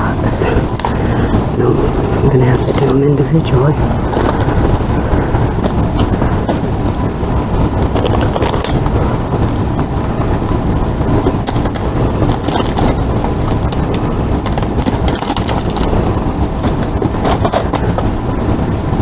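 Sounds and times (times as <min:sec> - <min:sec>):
low rumble: 0:00.0 - 0:19.0.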